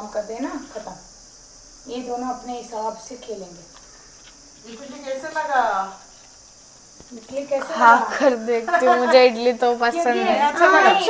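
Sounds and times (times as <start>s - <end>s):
faint high-pitched hiss: 0.0s - 11.0s
person speaking: 4.6s - 6.0s.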